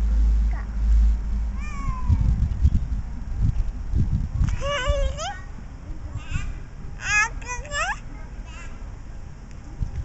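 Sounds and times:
low rumbling microphone noise: 0.0 - 10.0
toddler squealing: 1.6 - 2.2.

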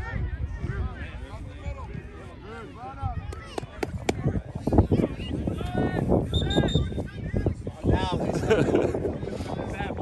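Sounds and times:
whistle blast: 6.3 - 7.0.

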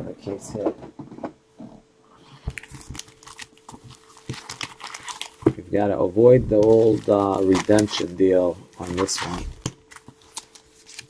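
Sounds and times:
foil card pack crinkling: 2.4 - 5.5, 6.2 - 11.0.

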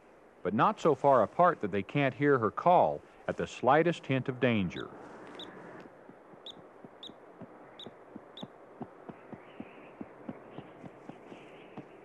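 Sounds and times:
hooves stepping on rock: 5.8 - 12.0.

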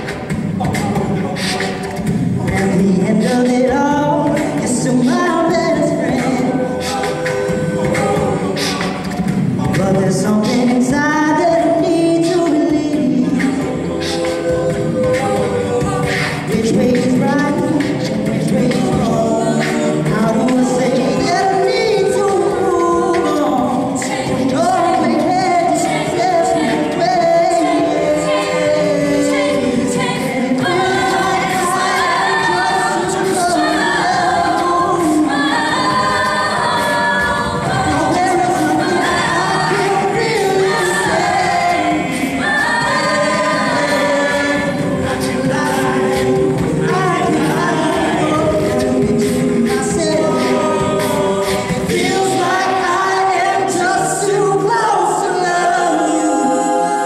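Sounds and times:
a cappella group singing: 0.0 - 57.0.

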